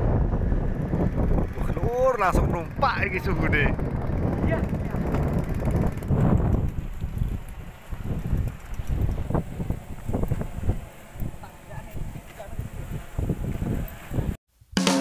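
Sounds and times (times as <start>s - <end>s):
gusty wind buffeting microphone: 0.0s - 14.4s.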